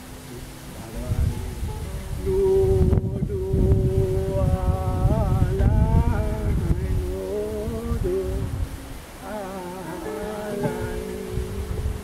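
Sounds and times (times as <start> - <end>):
acoustic guitar: 0.0 - 12.0
man singing: 2.1 - 12.0.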